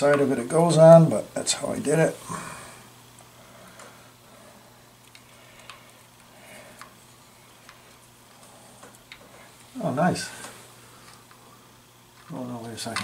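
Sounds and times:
small parts clicking and tapping: 12.2 - 13.0.

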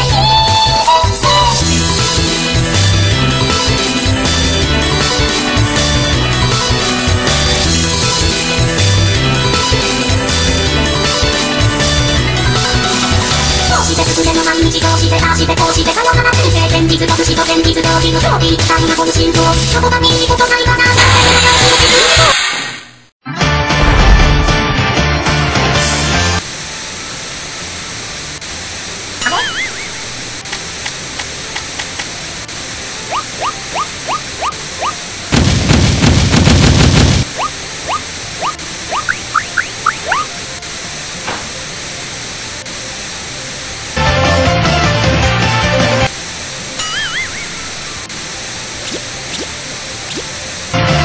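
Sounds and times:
static-like hiss: 26.4 - 44.0, 45.8 - 50.8
cartoon music: 29.2 - 30.3, 33.0 - 35.1, 37.3 - 40.4, 46.8 - 48.1
warbling tone: 33.1 - 35.0, 37.3 - 40.3, 46.8 - 48.1
warbling rising whistle: 37.4 - 40.3.

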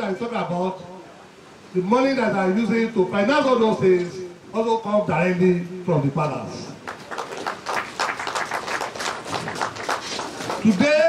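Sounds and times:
audience clapping: 6.8 - 11.0.

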